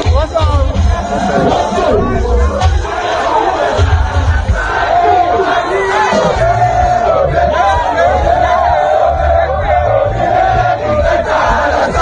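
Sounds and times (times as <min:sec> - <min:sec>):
crowd shouting: 0:00.0 - 0:12.0.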